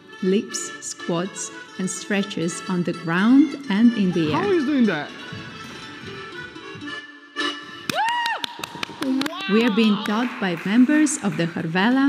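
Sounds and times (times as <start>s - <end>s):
hand claps: 7.8s - 11.7s
high whooping cheer: 7.9s - 10.2s
dance music: 9.1s - 12.0s.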